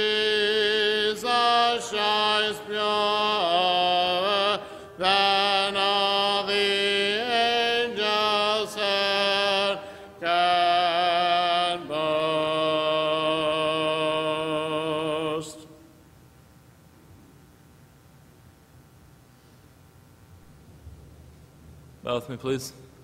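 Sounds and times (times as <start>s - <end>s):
congregation singing a hymn: 0.0s - 15.8s.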